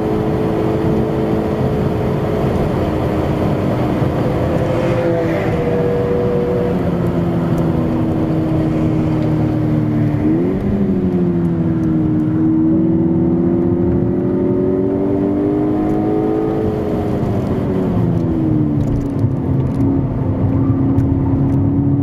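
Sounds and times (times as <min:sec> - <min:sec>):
car engine accelerating: 0:00.0 - 0:22.0.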